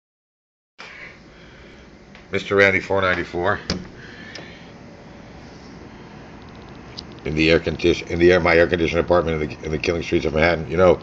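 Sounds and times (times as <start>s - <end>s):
air conditioner humming: 0.8s - 11.0s.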